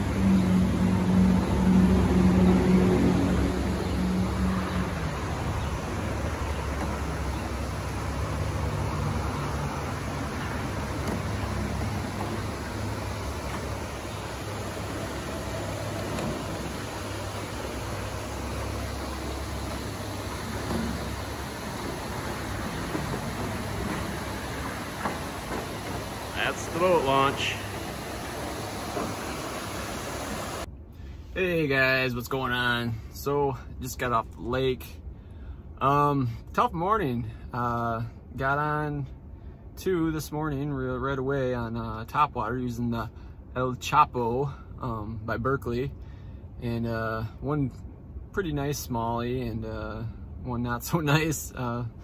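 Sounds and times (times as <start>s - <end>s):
boat motor humming: 0.0s - 30.7s.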